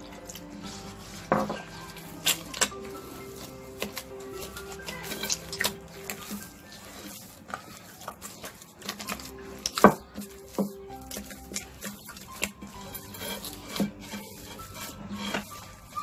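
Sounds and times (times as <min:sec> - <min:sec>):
dough slapping and knocking in bowl: 0:00.0 - 0:16.0
soft background music: 0:00.0 - 0:16.0.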